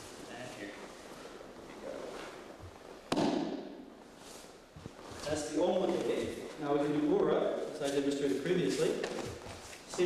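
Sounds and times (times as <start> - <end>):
body striking training mat: 3.1 - 3.8.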